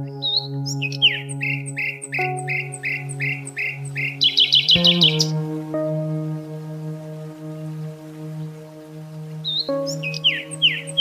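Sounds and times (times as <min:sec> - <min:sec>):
ambient music drone: 0:00.0 - 0:11.0
songbird singing: 0:00.0 - 0:11.0.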